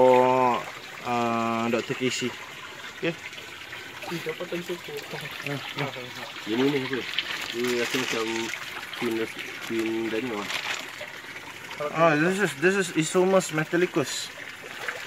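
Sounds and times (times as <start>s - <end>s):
creek water trickling and splashing: 0.0s - 15.0s.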